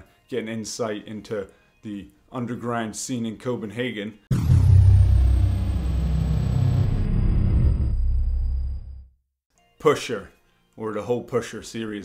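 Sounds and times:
deep cinematic boom: 0:04.3 - 0:09.1
high tone gliding down: 0:04.3 - 0:09.1.

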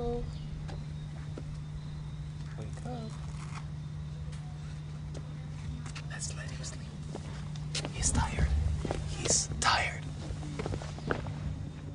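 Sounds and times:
steady low hum: 0:00.0 - 0:11.9
person whispering: 0:06.1 - 0:06.8, 0:08.0 - 0:08.5, 0:09.2 - 0:10.1.

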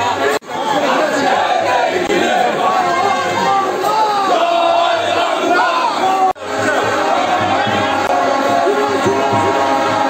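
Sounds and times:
crowd shouting slogans: 0:00.0 - 0:10.0.

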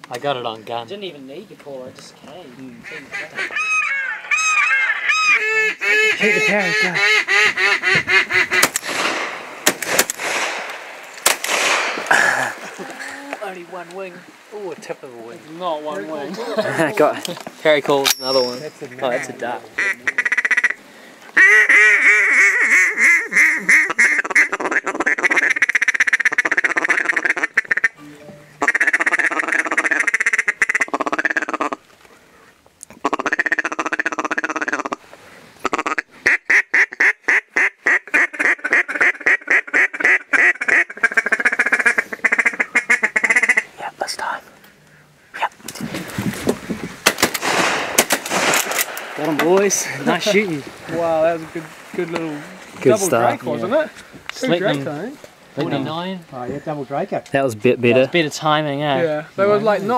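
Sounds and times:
duck call quacking: 0:02.8 - 0:08.7, 0:18.9 - 0:20.8, 0:21.4 - 0:28.0, 0:28.6 - 0:31.8, 0:33.0 - 0:35.0, 0:35.6 - 0:43.7
burst of sharp noise: 0:08.6 - 0:12.6, 0:47.0 - 0:49.2.

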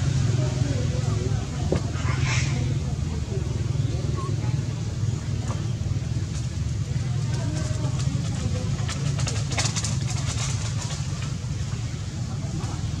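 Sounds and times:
crackling rustle: 0:06.3 - 0:11.8.

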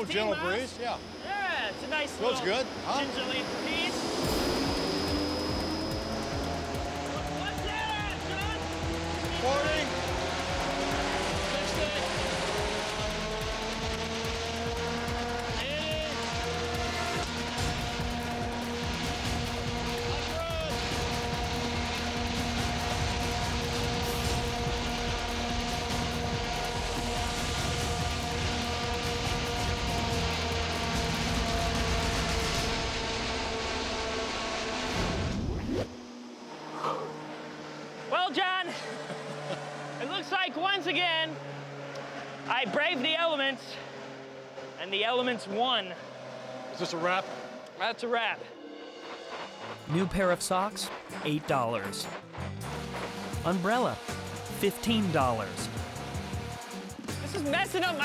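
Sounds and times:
wind machine rushing: 0:00.0 - 0:37.6, 0:46.9 - 0:58.0
voices and laughter: 0:38.6 - 0:39.8.

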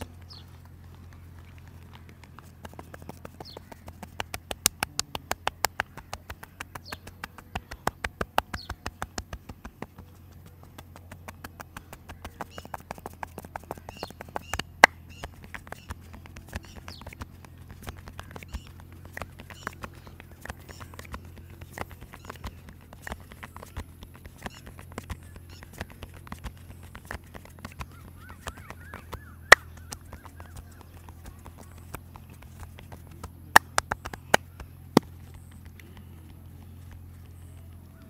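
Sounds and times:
birds chirping: 0:00.0 - 0:38.0
hand slaps and taps on head: 0:02.0 - 0:36.0.

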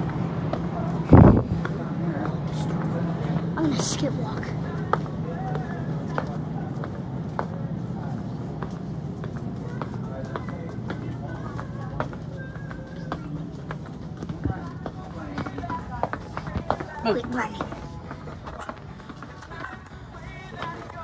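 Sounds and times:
child running steps: 0:00.0 - 0:21.0
indistinct background voices: 0:00.0 - 0:21.0
steady low hum: 0:00.0 - 0:21.0.

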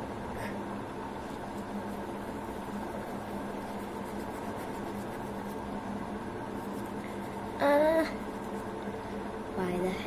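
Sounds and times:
steady hum with hiss: 0:00.0 - 0:10.0.

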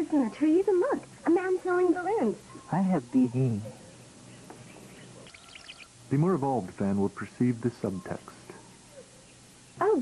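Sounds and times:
background hiss: 0:00.0 - 0:10.0
birds chirping: 0:00.0 - 0:10.0.

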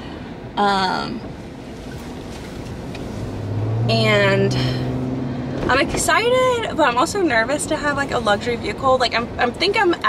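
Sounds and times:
low engine drone: 0:00.0 - 0:09.4
road and tyre hiss: 0:00.0 - 0:10.0.

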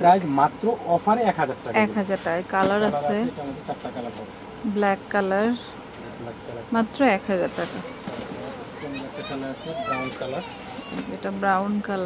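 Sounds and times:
background voices talking: 0:00.0 - 0:12.0.

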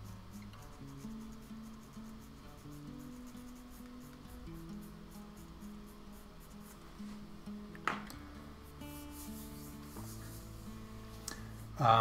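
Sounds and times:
hand rubbing paper: 0:00.0 - 0:07.3, 0:08.6 - 0:11.8.

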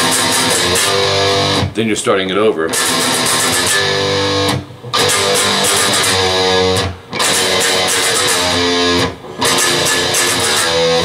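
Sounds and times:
electric guitar strumming chords: 0:00.0 - 0:01.8, 0:02.6 - 0:11.0.

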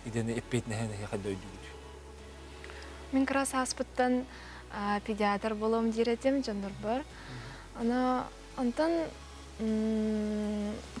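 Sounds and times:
woman speaking: 0:03.1 - 0:07.1, 0:07.8 - 0:11.0
woman humming: 0:09.6 - 0:11.0.

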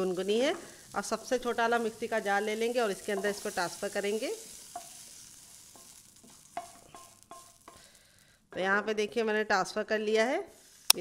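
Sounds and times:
soft scraping in a pan: 0:00.0 - 0:08.1, 0:10.4 - 0:11.0.

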